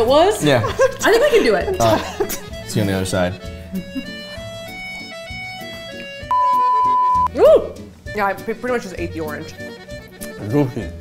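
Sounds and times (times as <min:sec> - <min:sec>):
light background music: 0:00.0 - 0:11.0
steady test tone beep: 0:06.3 - 0:07.3.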